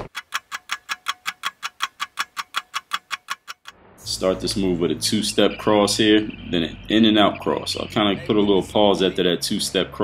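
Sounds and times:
fast even ticking: 0.0s - 9.0s.

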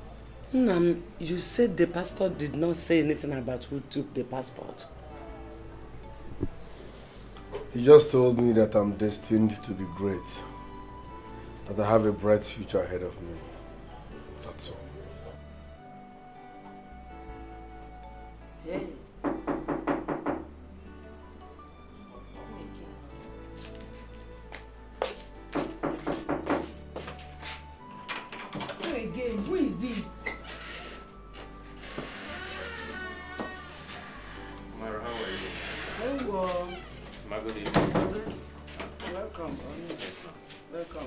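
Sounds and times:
soft background music: 0.0s - 41.0s
rapid knocking on a door: 19.2s - 20.5s, 25.5s - 26.8s.

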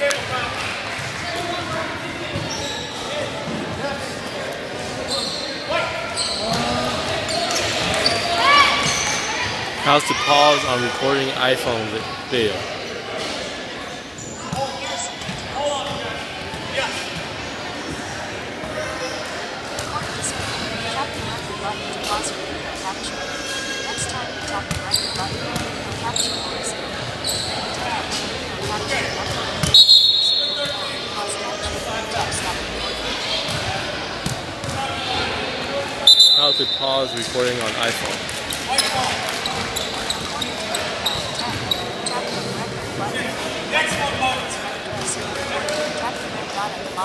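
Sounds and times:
gym chatter: 0.0s - 47.0s
high whistle blasts: 29.6s - 30.8s, 36.0s - 36.8s.

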